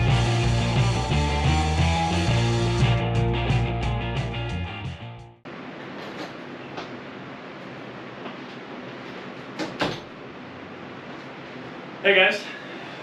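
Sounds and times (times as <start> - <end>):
rock music: 0.0 - 5.4.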